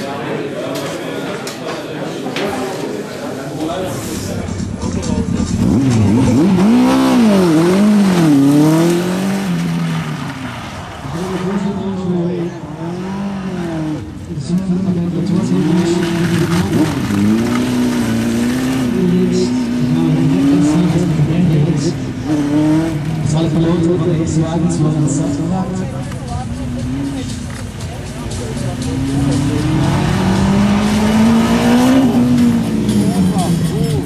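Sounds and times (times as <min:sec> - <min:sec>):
sports car engine revving: 0:03.9 - 0:34.0.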